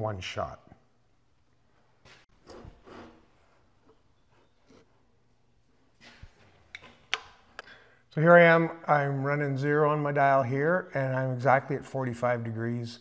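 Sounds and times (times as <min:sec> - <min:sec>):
rubbing sounds: 0:02.0 - 0:05.2.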